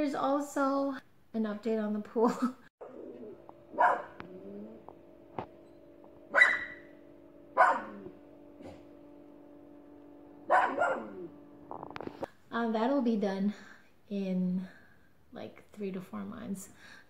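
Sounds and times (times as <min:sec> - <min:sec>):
dog barking: 0:02.8 - 0:04.5, 0:06.3 - 0:06.9, 0:07.6 - 0:08.8, 0:10.5 - 0:11.3
steady hum: 0:02.8 - 0:12.8.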